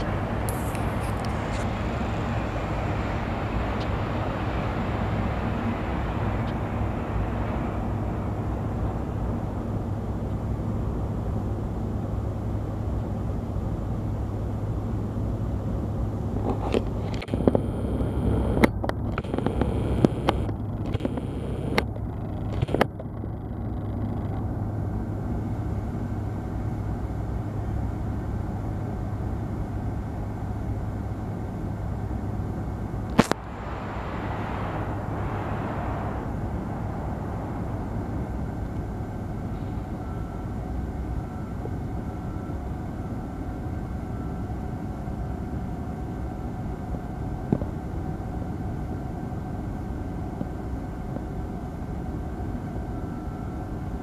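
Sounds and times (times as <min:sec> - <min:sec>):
distant freight train rumble: 0:00.0 - 0:54.0.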